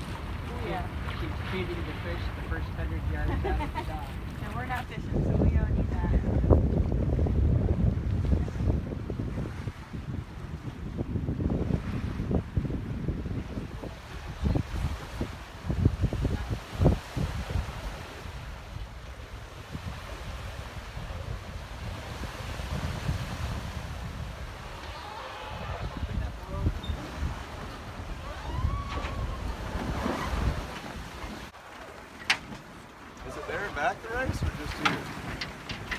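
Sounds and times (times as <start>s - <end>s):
wind buffeting microphone: 0.0s - 31.6s, 33.2s - 35.9s
water washing along hull: 0.0s - 35.9s.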